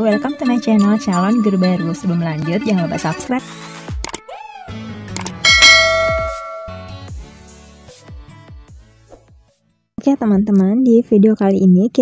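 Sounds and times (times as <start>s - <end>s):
notification bell ding: 5.5s - 6.9s.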